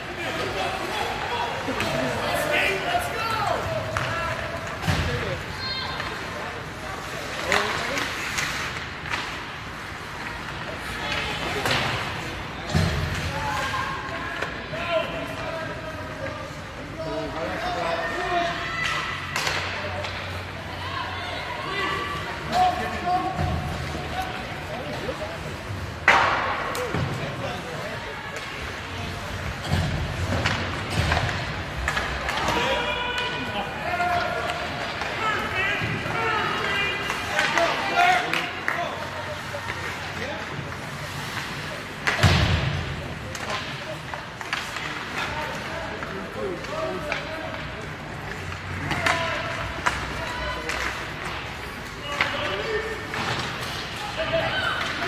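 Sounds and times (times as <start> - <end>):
players and spectators shouting: 0.0 - 6.3, 32.1 - 40.1.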